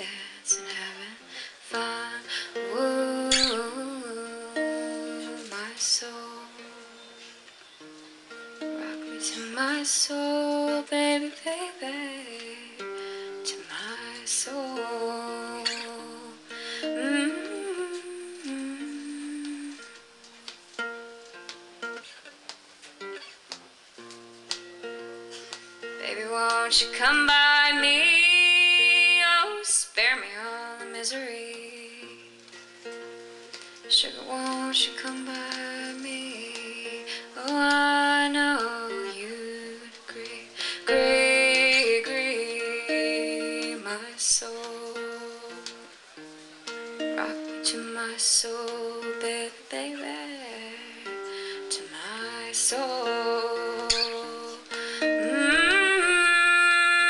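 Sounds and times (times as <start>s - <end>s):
acoustic guitar: 0.0s - 57.0s.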